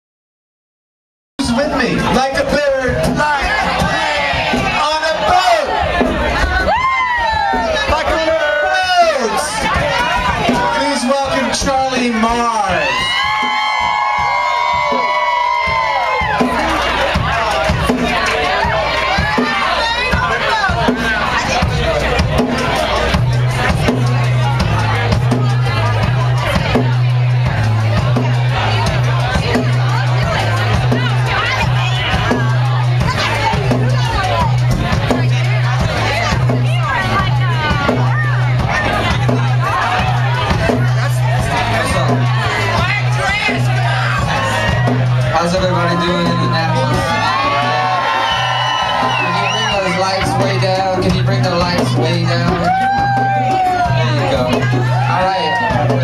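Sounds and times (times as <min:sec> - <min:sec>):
drum hits: 0:01.4 - 0:56.0
live band groove: 0:01.4 - 0:56.0
crowd whooping: 0:01.5 - 0:56.0.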